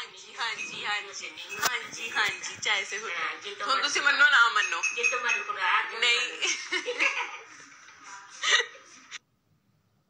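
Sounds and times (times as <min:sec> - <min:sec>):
woman laughing: 0:06.4 - 0:09.2.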